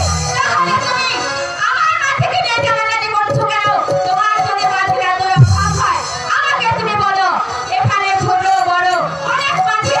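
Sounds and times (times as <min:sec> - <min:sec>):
live instrumental accompaniment: 0:00.0 - 0:10.0
low drum stroke: 0:05.4 - 0:05.9.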